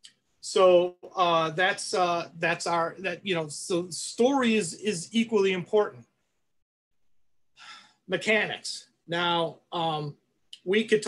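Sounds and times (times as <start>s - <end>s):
man inhaling: 7.5s - 8.0s.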